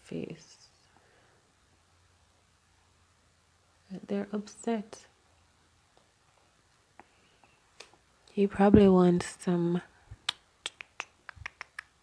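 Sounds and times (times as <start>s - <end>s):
light sharp clicks: 10.2s - 12.0s.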